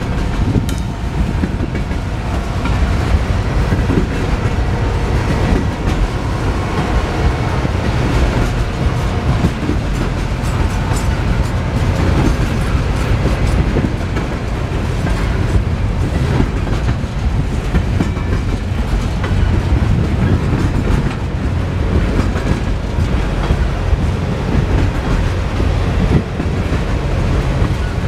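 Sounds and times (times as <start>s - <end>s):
freight train rumbling past: 0.0s - 28.0s
wheels clacking over rail joints: 0.0s - 28.0s.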